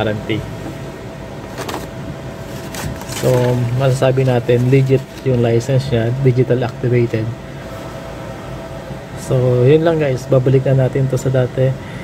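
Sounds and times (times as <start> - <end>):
steady background noise: 0.0 - 12.0
paper leaflet rustling: 1.5 - 5.7
paper crackles: 2.5 - 5.5.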